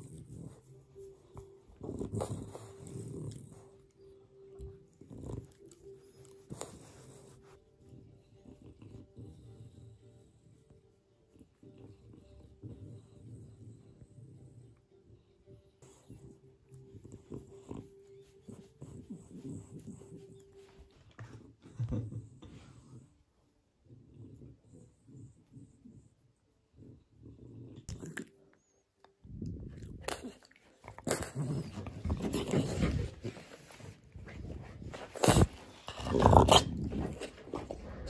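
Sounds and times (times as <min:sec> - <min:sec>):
dog grunting and snuffling: 0:00.0 - 0:10.2, 0:29.4 - 0:38.0.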